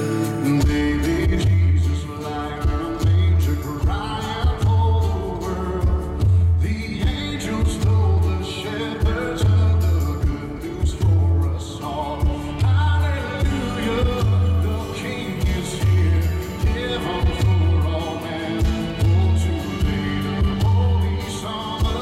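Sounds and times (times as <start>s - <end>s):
live rock band: 0.0s - 22.0s
man singing into a microphone: 0.0s - 22.0s
drum beat: 5.8s - 8.4s, 9.0s - 22.0s.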